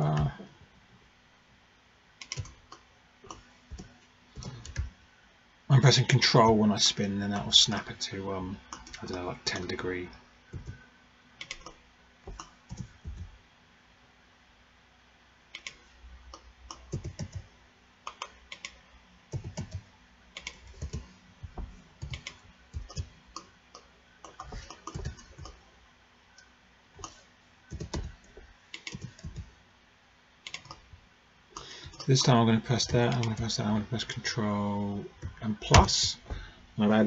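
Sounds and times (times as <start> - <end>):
keyboard keys clicking: 16.9 - 17.4, 24.2 - 25.6, 27.0 - 28.2, 28.8 - 29.5, 30.5 - 30.8.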